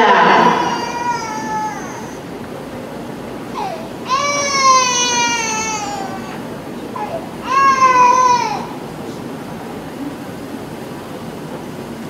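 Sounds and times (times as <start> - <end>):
long high-pitched yell: 7.0 - 8.8.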